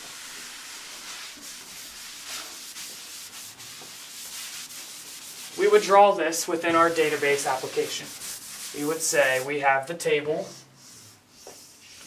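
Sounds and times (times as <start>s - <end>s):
rag wiping chalkboard: 0.0s - 12.0s.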